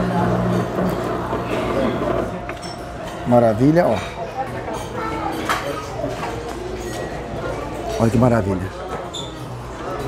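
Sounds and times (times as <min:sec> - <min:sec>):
background chatter of people: 0:00.0 - 0:10.0.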